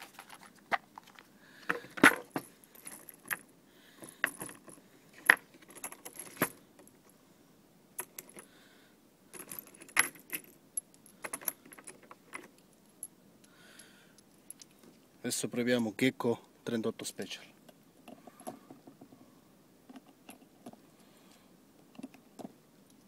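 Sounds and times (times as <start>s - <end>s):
metallic clicks and clinks: 9.3s - 13.1s, 13.8s - 14.9s.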